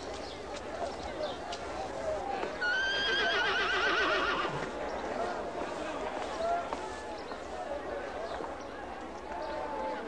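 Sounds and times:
horse whinnying: 0:02.7 - 0:04.5.

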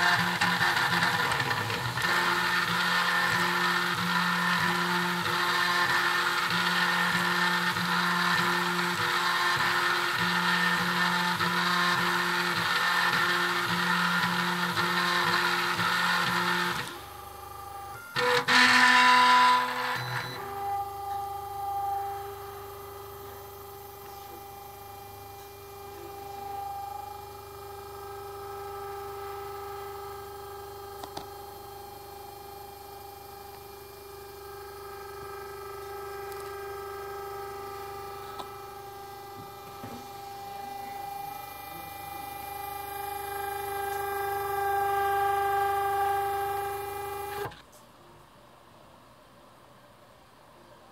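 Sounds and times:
stepper motors whining: 0:00.0 - 0:47.6.

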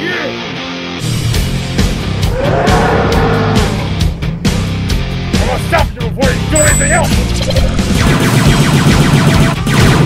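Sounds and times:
loud music: 0:00.2 - 0:10.0
monster roar: 0:02.1 - 0:04.4.

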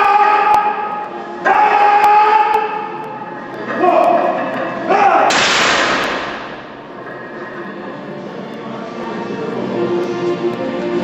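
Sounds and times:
loud crash: 0:05.3 - 0:07.0.

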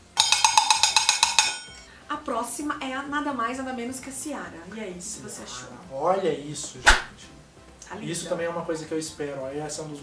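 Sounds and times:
metal pan clanging: 0:00.0 - 0:01.9.

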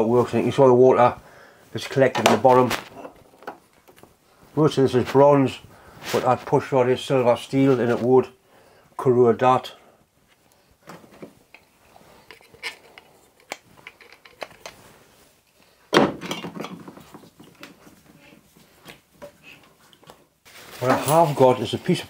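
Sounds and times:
hard objects clinking and knocking: 0:10.9 - 0:14.8, 0:15.9 - 0:17.7.

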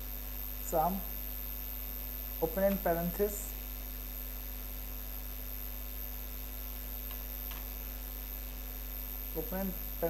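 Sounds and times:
electrical mains hum: 0:00.0 - 0:10.0
computer keystrokes: 0:07.1 - 0:07.7.

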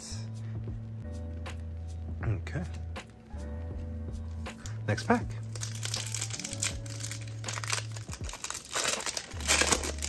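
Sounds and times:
foil card pack crinkling and tearing: 0:05.5 - 0:10.0.

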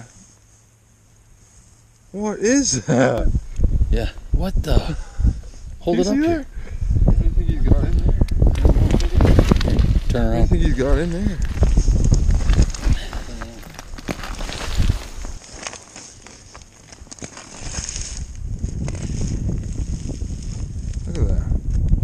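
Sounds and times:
wind rumbling on microphone: 0:03.2 - 0:15.7, 0:17.4 - 0:22.0
rustling and handling noises: 0:08.5 - 0:21.0.

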